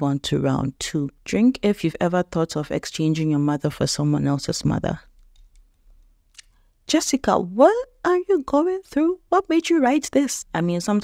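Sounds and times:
woman speaking: 0:00.0 - 0:05.1, 0:06.8 - 0:11.0.

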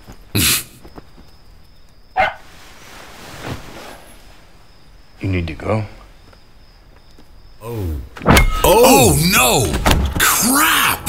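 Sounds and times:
puppy barking: 0:02.2 - 0:02.4.

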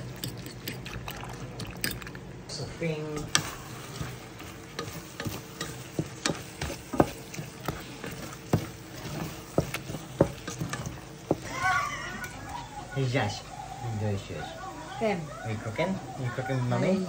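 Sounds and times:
food sizzling in a pan: 0:02.9 - 0:13.5
wooden spatula scraping a pan: 0:03.2 - 0:11.6.

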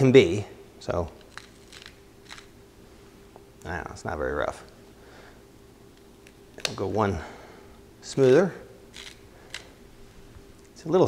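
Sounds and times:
salt grinder grinding: 0:01.2 - 0:02.5, 0:08.9 - 0:09.6.

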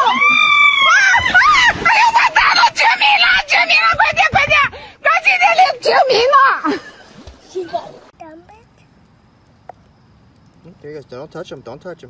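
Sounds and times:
women screaming: 0:00.0 - 0:04.0.

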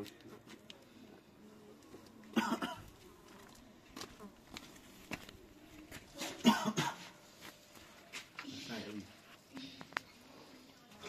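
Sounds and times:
person coughing: 0:02.4 - 0:02.9, 0:06.4 - 0:07.1.

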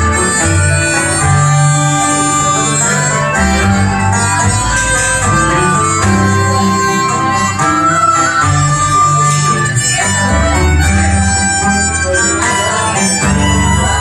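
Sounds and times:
accordion bass notes: 0:00.0 - 0:14.0
button accordion: 0:00.0 - 0:14.0
harmonica melody: 0:00.0 - 0:14.0
tenor banjo: 0:00.0 - 0:14.0.

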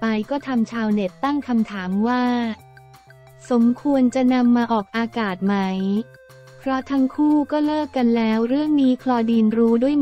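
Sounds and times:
woman narrating: 0:00.0 - 0:02.6, 0:03.4 - 0:10.0
soft background music: 0:00.0 - 0:10.0.

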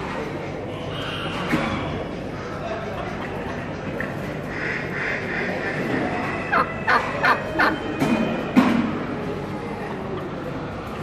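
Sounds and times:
turkey gobbling: 0:04.5 - 0:07.9.

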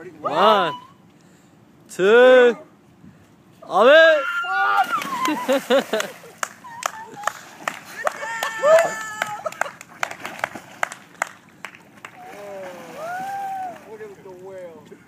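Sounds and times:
people whooping and laughing: 0:04.1 - 0:10.0, 0:12.2 - 0:13.9
splash into pool: 0:04.6 - 0:06.4, 0:11.9 - 0:14.0
person yelling: 0:08.2 - 0:09.5.

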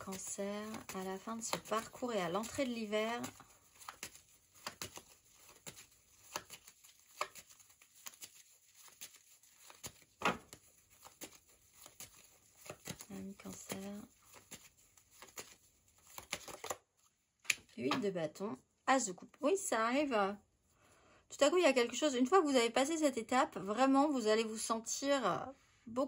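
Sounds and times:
cards shuffling: 0:00.0 - 0:18.0.

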